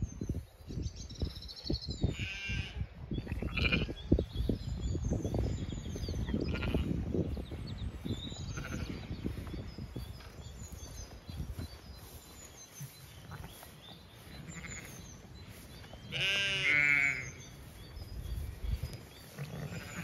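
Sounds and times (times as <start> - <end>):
birds chirping: 0.0 - 20.0
wind rumble on microphone: 0.0 - 20.0
sheep bleating: 2.1 - 2.8, 16.1 - 17.4, 19.4 - 20.0.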